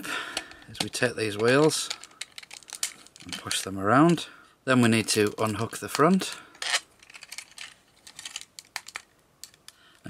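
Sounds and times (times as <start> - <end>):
plastic parts clicking: 0.3 - 4.2, 5.2 - 10.0.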